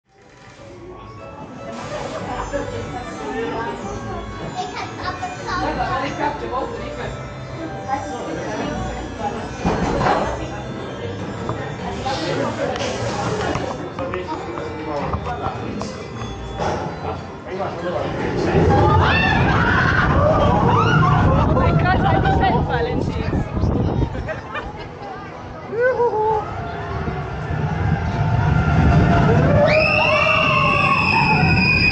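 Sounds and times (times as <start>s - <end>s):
background music: 0.1s - 31.9s
children chattering: 0.6s - 31.9s
coaster train rumbling on track: 17.7s - 31.9s
riders laughing and chattering: 23.9s - 26.7s.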